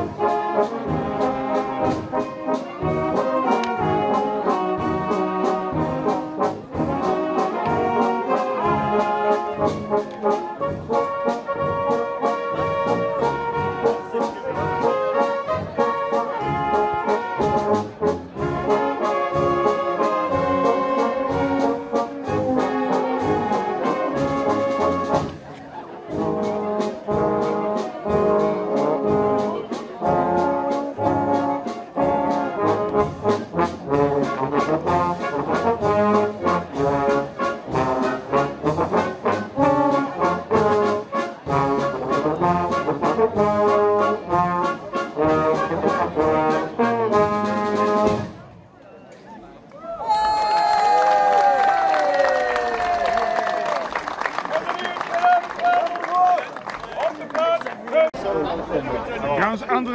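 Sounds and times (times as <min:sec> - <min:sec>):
brass band playing: 0:00.0 - 0:48.6.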